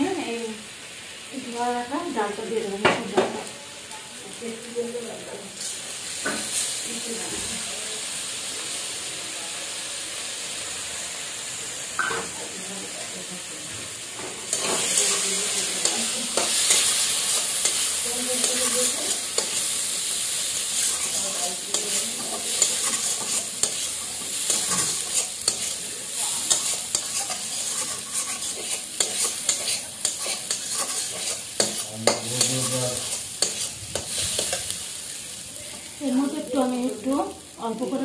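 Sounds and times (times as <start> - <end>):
food sizzling in hot oil: 0.0 - 38.0
metal utensil scraping a wok: 14.0 - 35.0.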